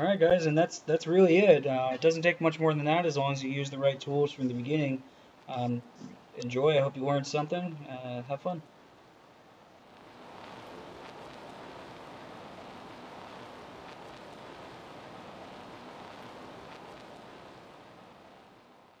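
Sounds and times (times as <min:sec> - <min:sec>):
steady hiss: 0:00.0 - 0:19.0
faint ticks: 0:09.9 - 0:17.9.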